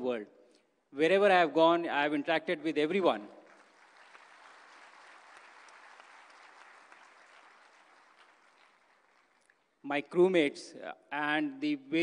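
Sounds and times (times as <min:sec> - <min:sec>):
faint audience applause: 0:03.4 - 0:09.8.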